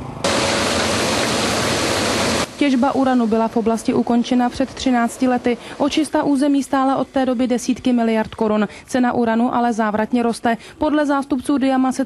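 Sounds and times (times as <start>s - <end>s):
rushing noise at wellhead: 0.2s - 3.4s.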